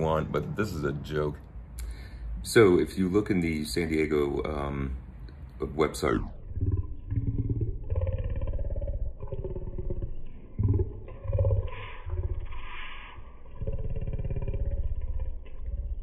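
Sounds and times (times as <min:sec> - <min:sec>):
man talking in low boomy voice: 0:00.0 - 0:01.5, 0:02.4 - 0:05.0, 0:05.6 - 0:12.7.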